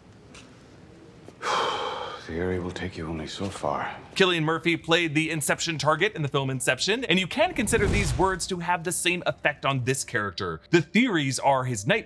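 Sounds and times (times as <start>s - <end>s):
man's sharp breathy exhale: 1.4s - 2.2s.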